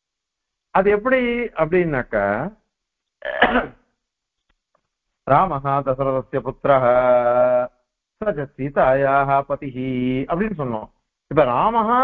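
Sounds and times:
man clearing his throat: 3.2s - 3.8s.

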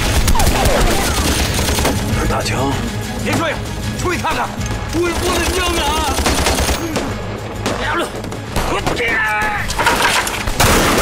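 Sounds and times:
people shouting: 0.0s - 1.7s, 7.8s - 9.8s
dramatic music: 0.0s - 11.0s
automatic gunfire: 5.2s - 7.1s.

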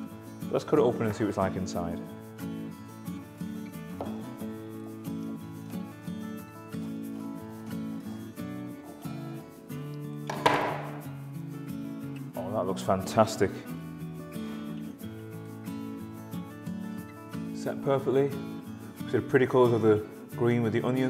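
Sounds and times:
instrumental background music: 0.0s - 21.0s.

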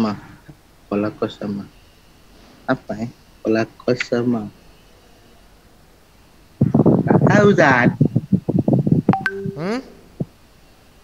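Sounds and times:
choppy voice over online call: 9.2s - 10.0s
short electronic tone: 9.2s - 10.1s
man saying hmm: 9.5s - 10.0s.

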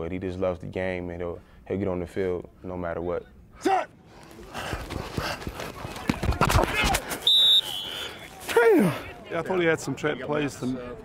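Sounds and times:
referee's whistle: 7.2s - 8.3s.

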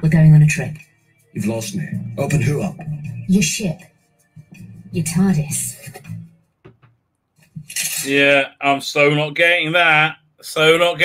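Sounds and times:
trailer soundtrack music: 0.0s - 6.6s.

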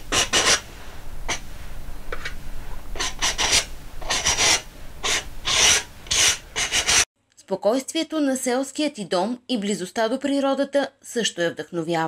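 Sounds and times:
paintbrush scratching on canvas: 0.1s - 0.7s, 2.1s - 7.1s.

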